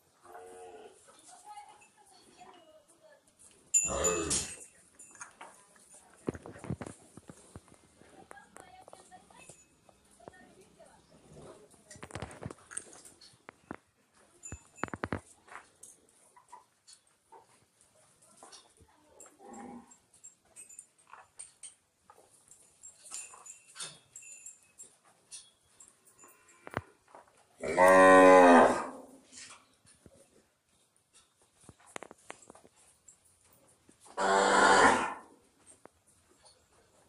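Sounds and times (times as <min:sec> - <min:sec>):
cow mooing: 0:03.9 - 0:04.5, 0:27.6 - 0:29.0, 0:34.2 - 0:35.3.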